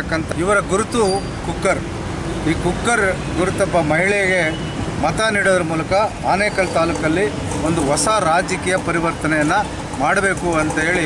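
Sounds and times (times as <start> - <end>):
low street noise hum: 0.0 - 11.0
man speaking into microphone: 0.0 - 11.0.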